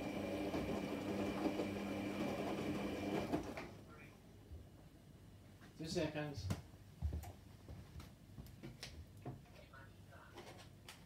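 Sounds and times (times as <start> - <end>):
washing machine motor humming: 0.0 - 3.7.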